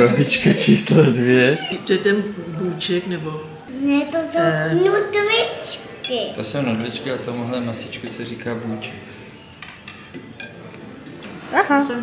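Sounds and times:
utensils clinking on plates: 0:09.4 - 0:11.5.

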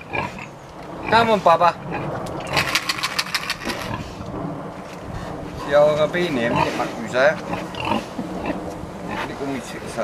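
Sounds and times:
pig grunting: 0:00.0 - 0:04.3, 0:05.1 - 0:09.9
pig clicking: 0:02.3 - 0:03.9.

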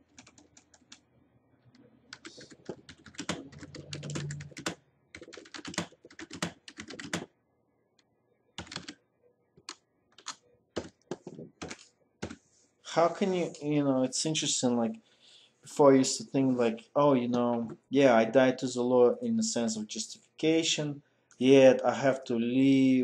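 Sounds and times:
computer keyboard typing: 0:00.0 - 0:01.0, 0:02.1 - 0:07.3, 0:08.6 - 0:09.0, 0:09.6 - 0:12.4.

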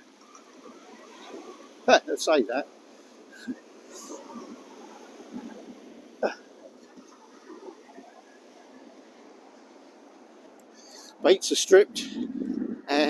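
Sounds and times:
breeze: 0:00.0 - 0:13.0
surf breaking on beach: 0:00.0 - 0:13.0.

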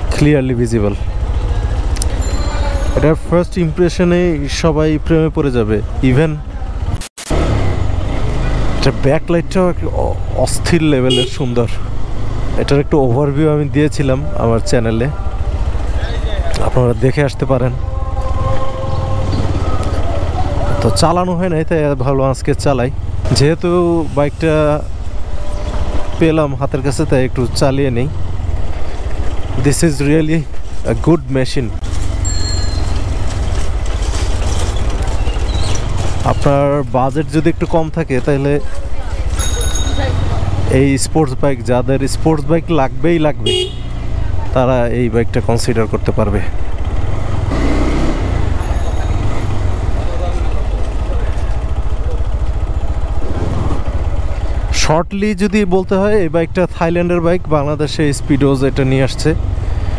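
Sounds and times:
motorcycle engine rumbling: 0:00.0 - 0:59.9.

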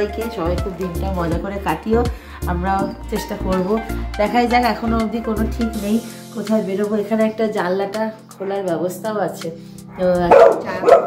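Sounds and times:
light background music: 0:00.0 - 0:11.0
dog barking: 0:10.3 - 0:11.0.

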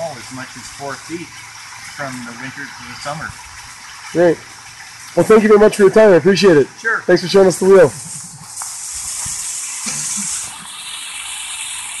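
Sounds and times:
water splashing off waterwheel: 0:00.0 - 0:12.0.

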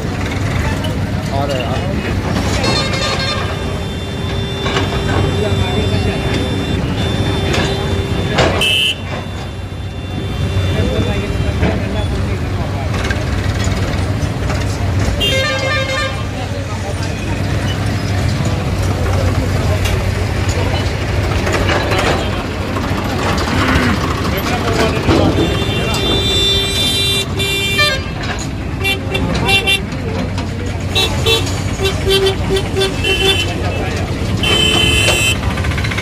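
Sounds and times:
crowd chatter: 0:00.0 - 0:36.0
low engine rumble: 0:00.0 - 0:36.0
vehicle horn: 0:02.5 - 0:11.7, 0:15.2 - 0:16.3, 0:25.0 - 0:29.8, 0:31.0 - 0:35.4.

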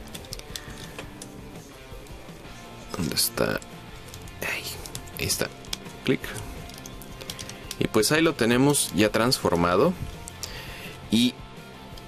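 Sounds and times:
instrumental guitar music: 0:00.0 - 0:12.0.

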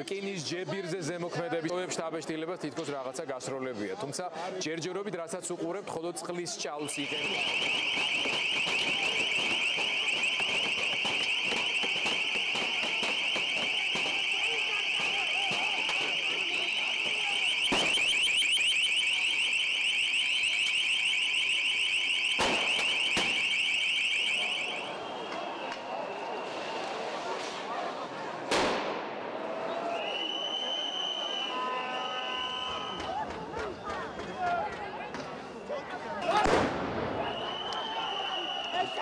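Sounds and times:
crowd noise: 0:00.0 - 0:39.0
electronic alarm warbling: 0:17.3 - 0:24.8
sharp bangs: 0:22.4 - 0:23.5.

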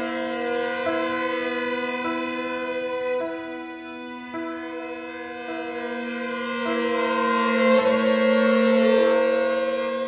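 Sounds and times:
string quartet playing chords: 0:00.0 - 0:10.0.

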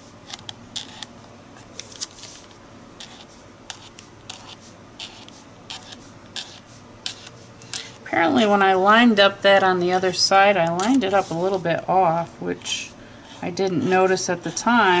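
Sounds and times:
marker scratching on paper: 0:00.8 - 0:01.1, 0:03.0 - 0:07.4, 0:10.0 - 0:11.7.

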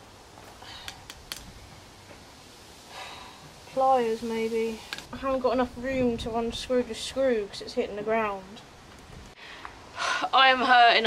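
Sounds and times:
hand tools clicking and tapping: 0:00.8 - 0:01.5.

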